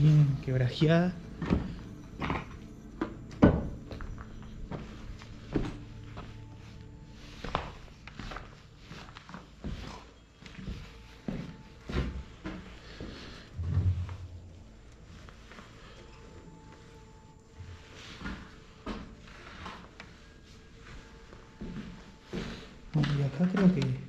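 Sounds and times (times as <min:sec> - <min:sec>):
background music: 0:00.0 - 0:24.0
footsteps on rubble: 0:00.6 - 0:15.8.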